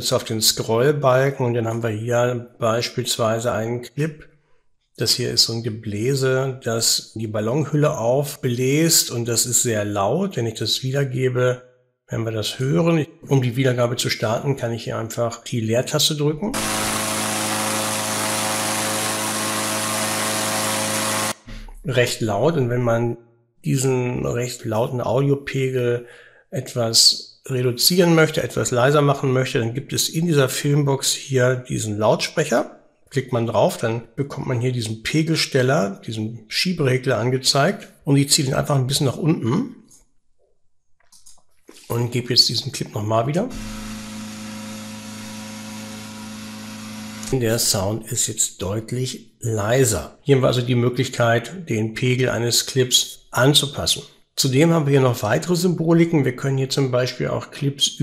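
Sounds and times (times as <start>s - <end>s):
inflator fan drone: 16.6s - 21.4s.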